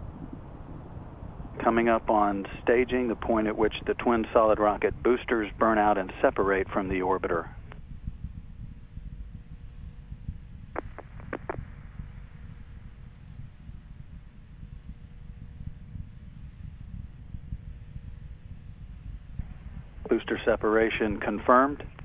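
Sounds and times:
faint hum: 0:00.0 - 0:22.0
low steady rumble: 0:00.0 - 0:22.0
brief blips: 0:10.8 - 0:11.7.

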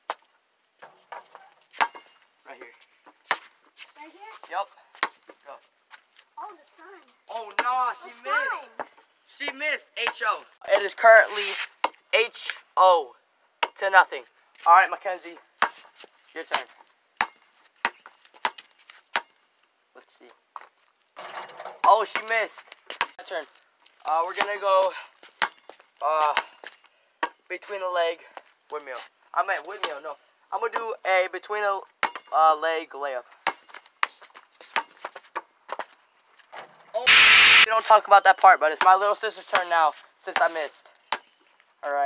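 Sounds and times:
basketball bouncing on concrete: 0:07.4 - 0:07.8, 0:16.5 - 0:19.3, 0:25.4 - 0:26.6
sneakers tapping on concrete: 0:22.1 - 0:23.2.

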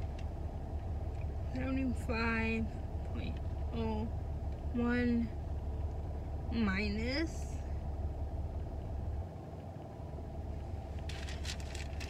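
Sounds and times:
car idling hum: 0:00.0 - 0:12.0.

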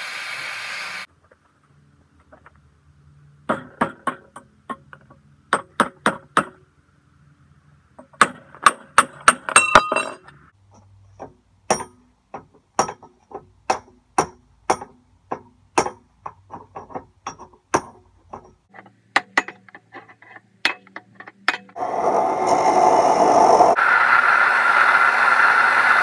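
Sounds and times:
hammer on chisel against steel: 0:11.7 - 0:13.1, 0:13.7 - 0:16.1.

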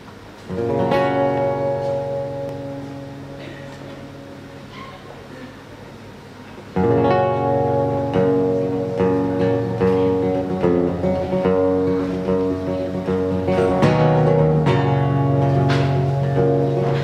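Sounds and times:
acoustic guitar playing: 0:00.0 - 0:05.4, 0:06.7 - 0:17.0.

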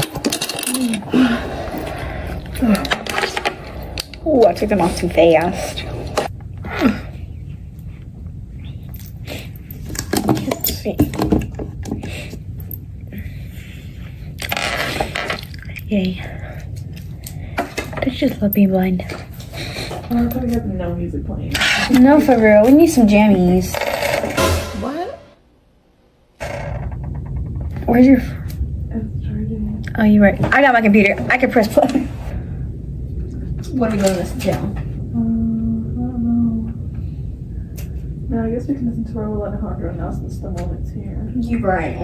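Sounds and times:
low room hum: 0:00.0 - 0:42.0.

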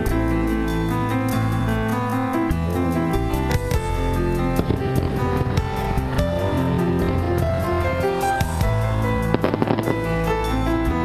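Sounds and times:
music: 0:00.0 - 0:11.0
fireworks pops and crackles: 0:07.5 - 0:10.6.

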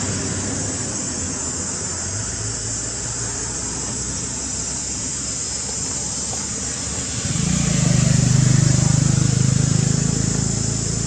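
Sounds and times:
engine pulsing drone: 0:00.0 - 0:11.0.

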